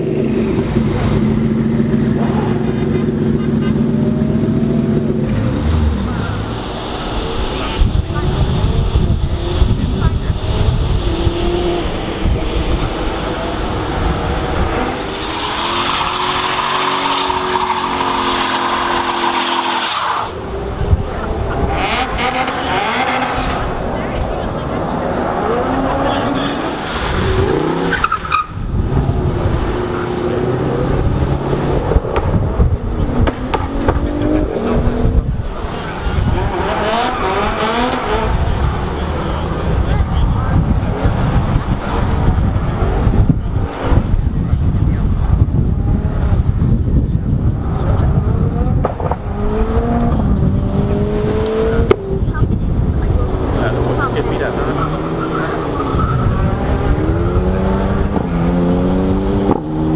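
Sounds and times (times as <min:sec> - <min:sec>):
car engine revving hard: 0:00.0 - 0:59.9
tyres screeching: 0:14.4 - 0:20.4.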